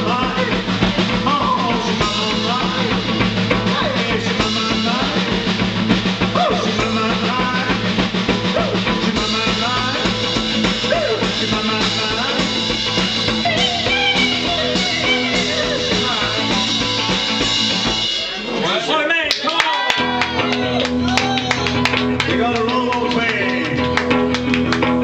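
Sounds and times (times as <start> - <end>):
drum kit beat: 0.0 - 25.0.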